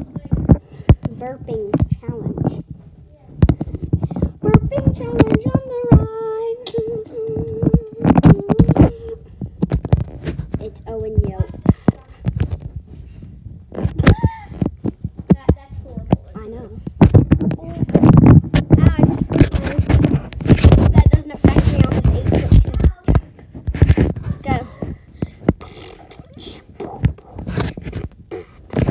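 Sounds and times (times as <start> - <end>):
sharp knocks and thumps: 0.0 - 26.2.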